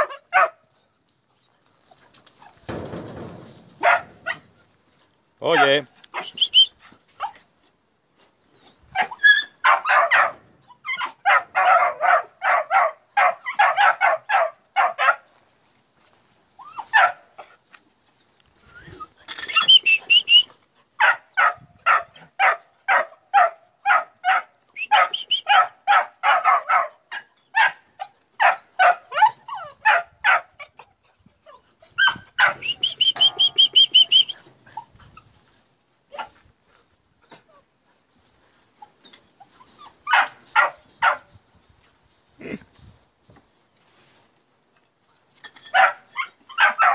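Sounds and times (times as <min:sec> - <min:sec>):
puppies yapping: 0:00.0 - 0:00.6, 0:01.3 - 0:07.4, 0:08.6 - 0:15.2, 0:18.9 - 0:36.4, 0:38.8 - 0:41.9, 0:45.8 - 0:46.9
puppy whine: 0:18.6 - 0:20.4, 0:29.1 - 0:29.8.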